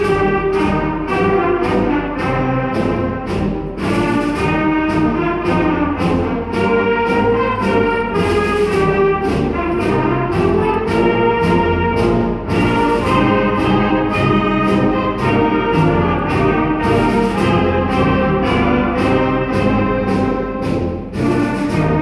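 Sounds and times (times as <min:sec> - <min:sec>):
symphonic band playing a march: 0:00.0 - 0:22.0.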